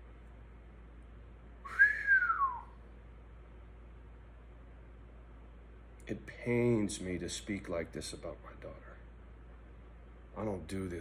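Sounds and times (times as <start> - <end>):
man whistling: 1.6 - 2.8.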